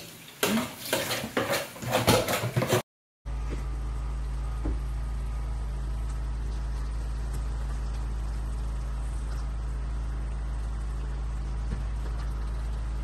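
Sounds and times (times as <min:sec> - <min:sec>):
steady low hum: 0:03.3 - 0:13.0.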